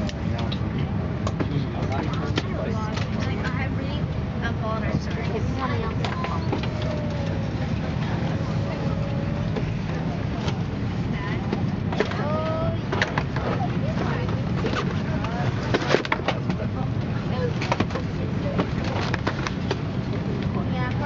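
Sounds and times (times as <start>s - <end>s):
cabin air system hum: 0.0s - 21.0s
passengers chattering: 0.0s - 21.0s.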